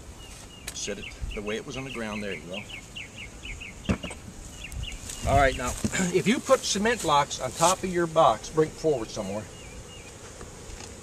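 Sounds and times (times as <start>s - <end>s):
bird chirping: 0.2s - 5.8s, 8.9s - 10.2s.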